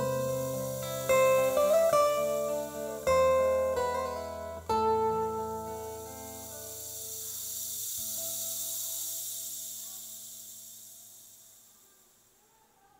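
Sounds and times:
song chord ringing out: 0:00.0 - 0:06.8
high hiss: 0:00.0 - 0:12.9.

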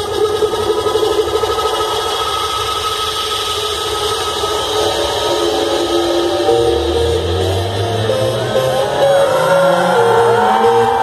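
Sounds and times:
held synth tones: 0:06.4 - 0:11.0.

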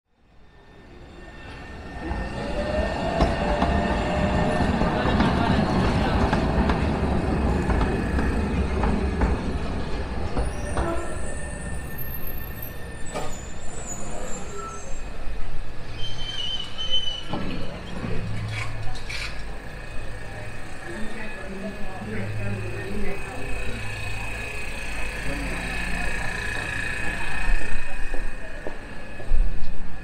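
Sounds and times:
street noise: 0:00.1 - 0:30.0
tram rumbling on rails: 0:00.1 - 0:30.0.

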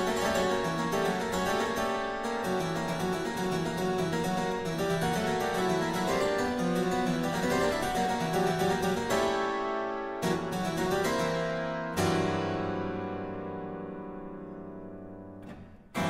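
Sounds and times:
harpsichord playing: 0:00.0 - 0:12.1.

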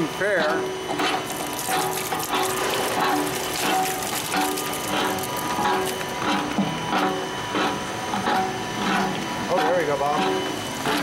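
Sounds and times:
machine hum: 0:00.6 - 0:11.0.

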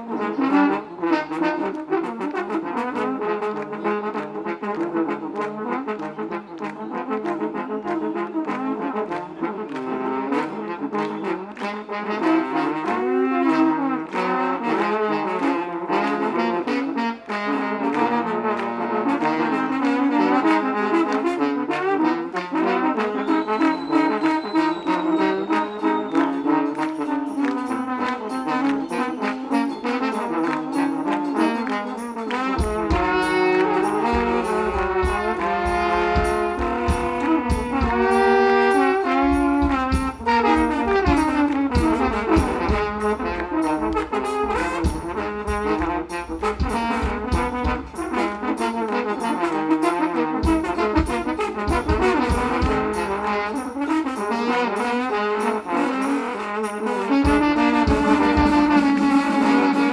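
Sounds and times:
trombones playing: 0:00.0 - 0:59.9
electric guitar: 0:06.0 - 0:48.7, 0:57.0 - 0:59.9
drum kit beat: 0:30.8 - 0:48.8, 0:50.4 - 0:53.8, 0:57.2 - 0:59.9.

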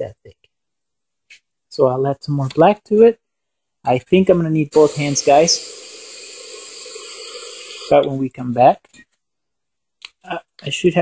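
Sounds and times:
spray can hissing: 0:04.7 - 0:08.0.

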